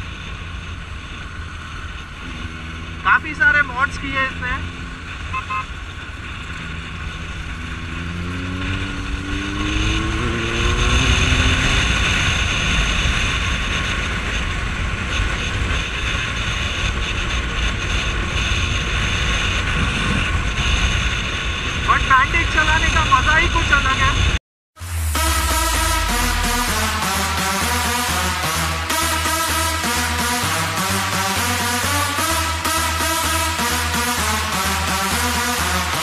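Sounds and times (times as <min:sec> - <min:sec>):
motorcycle engine accelerating: 0:00.0 - 0:36.0.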